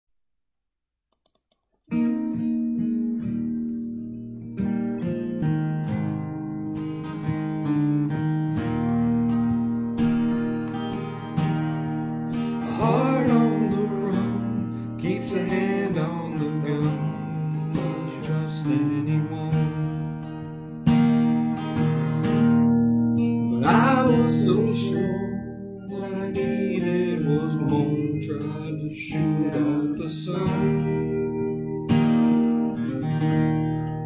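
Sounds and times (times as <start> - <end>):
faint clicks: 1.1 - 1.6
acoustic guitar chords: 1.3 - 34.0
wordless wavering vocals: 23.5 - 31.4.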